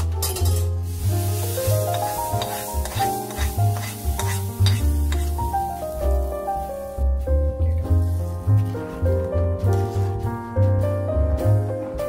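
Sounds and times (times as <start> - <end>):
background music: 0.0 - 12.0
hot oil sizzling: 0.2 - 8.4
oil crackles: 0.8 - 7.1.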